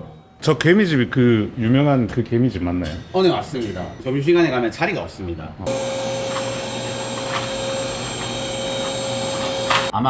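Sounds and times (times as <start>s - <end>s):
vacuum cleaner whine: 5.7s - 10.0s.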